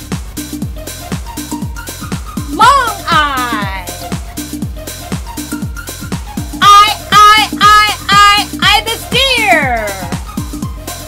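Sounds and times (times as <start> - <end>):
electronic dance beat: 0.0 - 11.0
high-pitched voice singing: 6.6 - 10.2.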